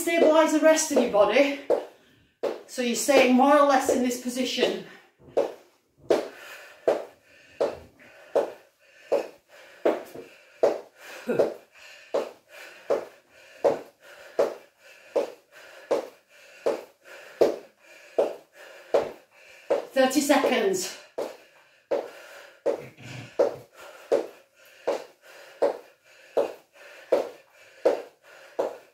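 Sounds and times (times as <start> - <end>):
woman breathing hard: 4.9 - 19.9, 21.1 - 28.9.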